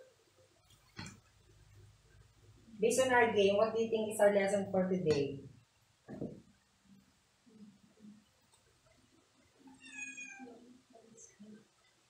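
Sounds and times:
faint low murmur: 0:00.0 - 0:12.0
faint high-pitched call: 0:09.8 - 0:10.7.

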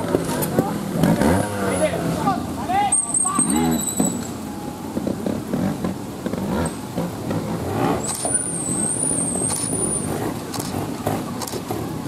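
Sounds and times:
motorcycle engine with throttle blips: 0:02.9 - 0:12.0.

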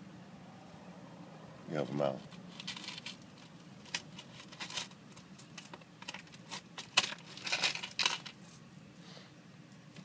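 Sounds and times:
coins clinking: 0:02.3 - 0:08.6.

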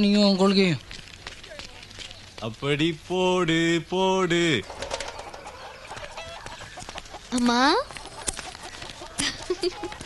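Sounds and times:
man laughing loudly: 0:09.2 - 0:10.0.

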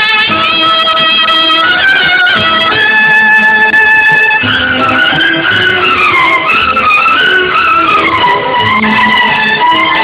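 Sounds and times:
gliding violin melody: 0:00.0 - 0:10.0
sustained accompaniment: 0:00.0 - 0:10.0.

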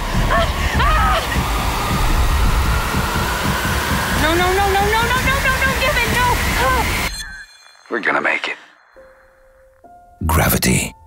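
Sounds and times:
dense low rumble with throbbing pulse: 0:00.0 - 0:07.1.

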